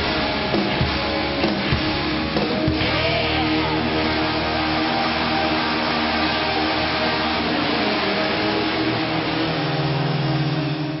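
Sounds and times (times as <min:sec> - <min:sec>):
distorted electric guitars: 0:00.0 - 0:11.0
live rock band noisy wash: 0:00.0 - 0:11.0.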